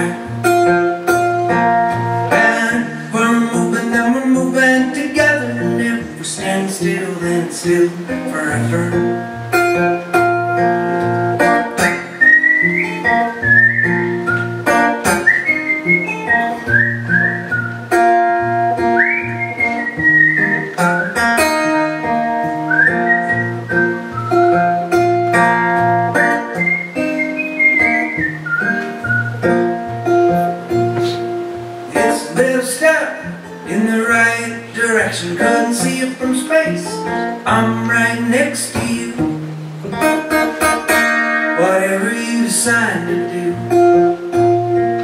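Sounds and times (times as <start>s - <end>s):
strummed acoustic guitar: 0.0s - 45.0s
man whistling a melody: 11.8s - 21.5s, 22.5s - 24.8s, 26.2s - 29.5s.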